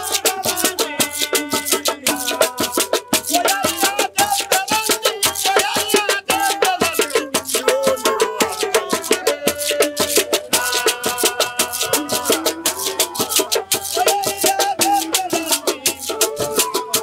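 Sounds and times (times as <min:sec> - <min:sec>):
hand rattles shaking: 0:00.0 - 0:17.0
small hand drum: 0:00.0 - 0:17.0
wooden flutes melody: 0:02.4 - 0:17.0.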